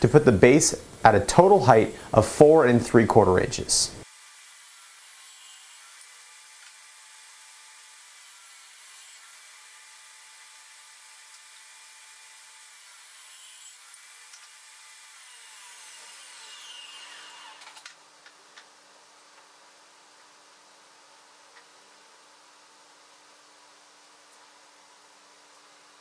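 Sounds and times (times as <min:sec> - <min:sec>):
table saw cutting wood: 0:04.0 - 0:17.9.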